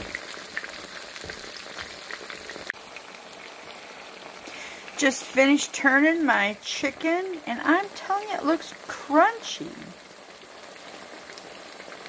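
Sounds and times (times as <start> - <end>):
oil sizzling in a skillet: 0.0 - 12.0.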